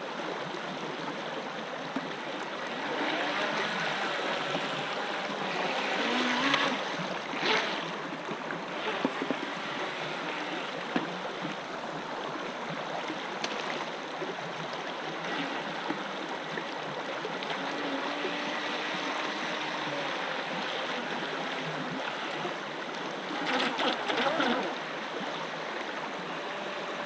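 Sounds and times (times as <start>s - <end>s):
stream rushing over stones: 0.0s - 27.0s.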